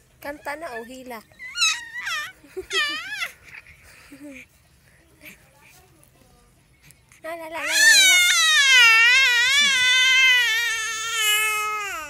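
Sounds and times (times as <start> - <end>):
baby squealing: 1.4 - 3.4, 7.6 - 12.0.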